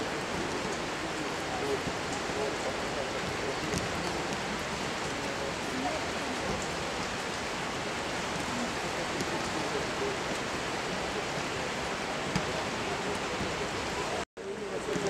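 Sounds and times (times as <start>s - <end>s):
faint distant voices: 0.0s - 15.0s
rain hiss: 0.0s - 15.0s
raindrop ticks: 0.0s - 15.0s.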